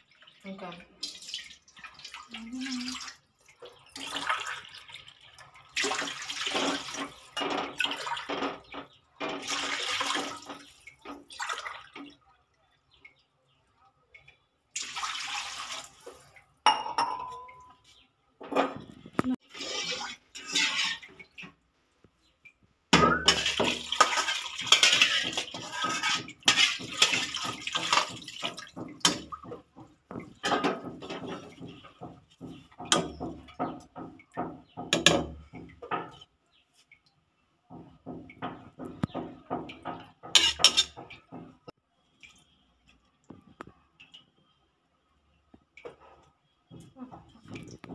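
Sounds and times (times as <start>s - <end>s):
water pouring into pot: 0.0s - 12.3s, 14.7s - 16.6s, 19.4s - 21.6s, 23.0s - 33.4s.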